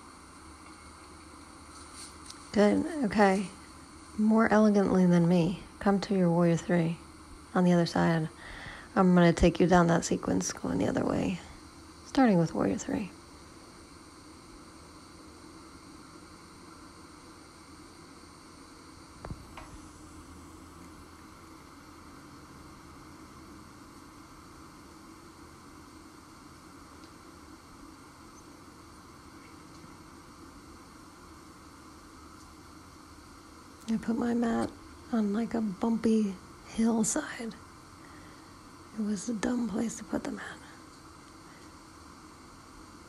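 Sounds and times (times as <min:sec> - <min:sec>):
outdoor background hiss: 0:00.0 - 0:43.0.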